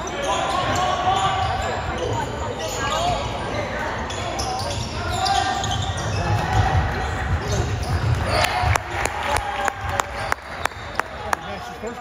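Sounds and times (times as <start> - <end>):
sneaker squeaks: 0.0 - 8.7
spectators' voices: 0.0 - 12.0
basketball bouncing on court: 5.6 - 9.0.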